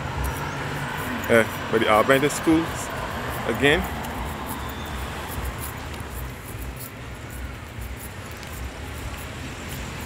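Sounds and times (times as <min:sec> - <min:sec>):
road noise: 0:00.0 - 0:10.0
faint irregular ticks: 0:00.1 - 0:10.0.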